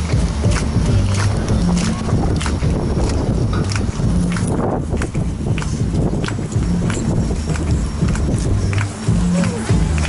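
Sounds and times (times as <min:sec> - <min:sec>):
dance music: 0:00.0 - 0:10.0.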